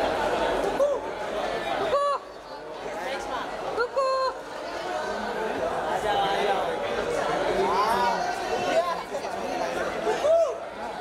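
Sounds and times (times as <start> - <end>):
many voices talking and calling out: 0.0 - 11.0.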